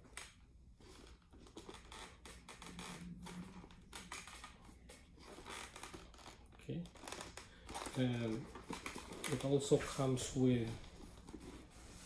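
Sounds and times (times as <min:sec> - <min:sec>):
helmet handled clicks and rustles: 0:07.0 - 0:10.0.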